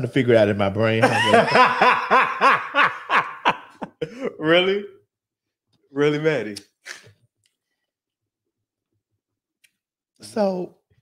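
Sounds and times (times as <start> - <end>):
person laughing: 1.0 - 4.4.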